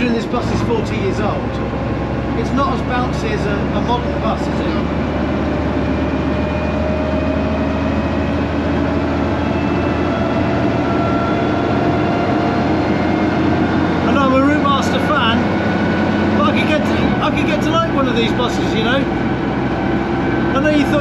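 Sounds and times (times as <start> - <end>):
bus diesel engine drone: 0.0 - 21.0.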